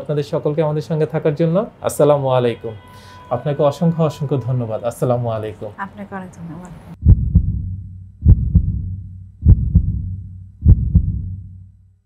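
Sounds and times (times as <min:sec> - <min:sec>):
heartbeat thumps: 0:07.0 - 0:11.7.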